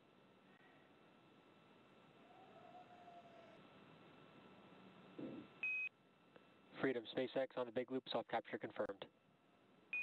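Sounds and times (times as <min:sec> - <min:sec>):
radio hiss: 0:06.7 - 0:09.1.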